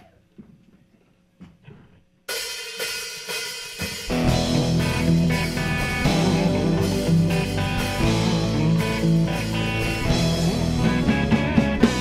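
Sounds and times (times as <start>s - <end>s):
drum kit with crashing cymbals: 2.3s - 12.0s
rock band playing: 2.4s - 12.0s.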